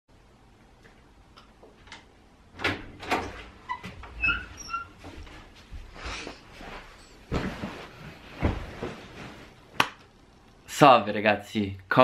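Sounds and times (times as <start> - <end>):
short squeaks: 3.7 - 5.0.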